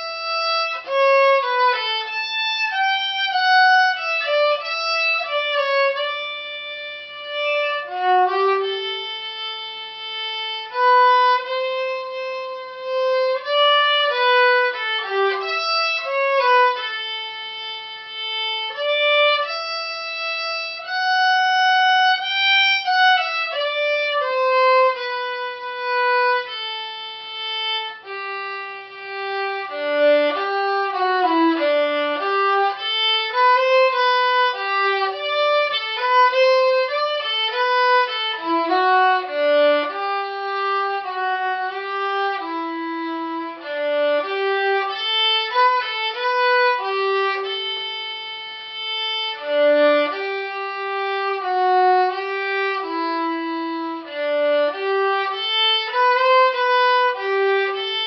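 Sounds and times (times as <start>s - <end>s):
solo violin melody: 0.0s - 58.0s.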